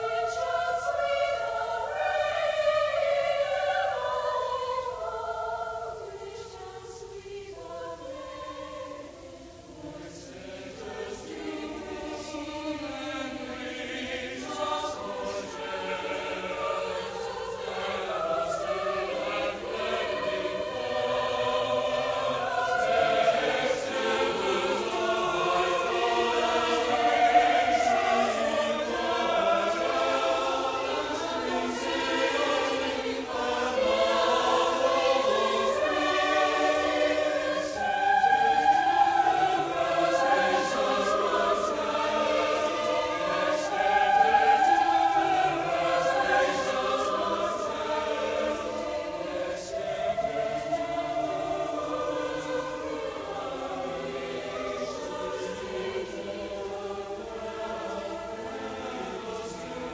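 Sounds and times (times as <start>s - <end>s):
mixed choir singing: 0.0s - 59.9s.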